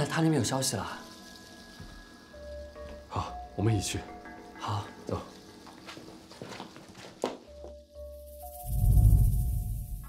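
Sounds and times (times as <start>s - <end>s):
deep rumbling swell: 8.7s - 10.0s.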